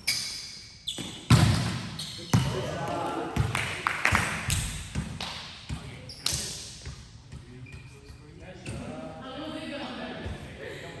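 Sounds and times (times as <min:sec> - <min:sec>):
players' voices in gymnasium: 0:00.0 - 0:11.0
volleyball hitting gym floor: 0:01.0 - 0:07.5.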